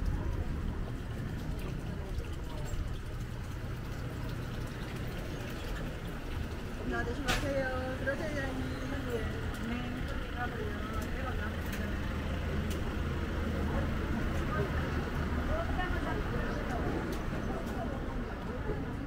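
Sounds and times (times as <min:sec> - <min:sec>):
passers-by talking: 0:00.0 - 0:19.0
traffic rumble: 0:00.0 - 0:19.0.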